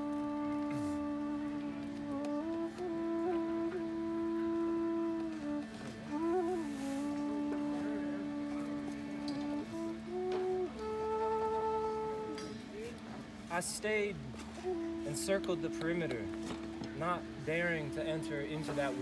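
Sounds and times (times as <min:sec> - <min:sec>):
bamboo flute melody: 0:00.0 - 0:19.0.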